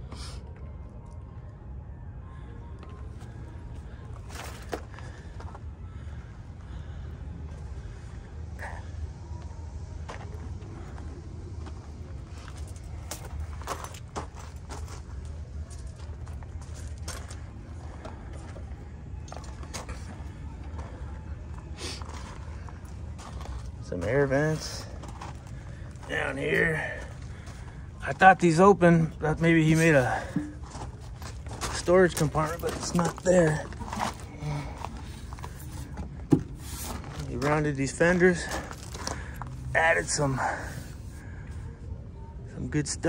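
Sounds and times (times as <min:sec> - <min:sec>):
steady low rumble: 0:00.0 - 0:42.6
footsteps on gravel: 0:10.1 - 0:18.7, 0:19.3 - 0:41.0.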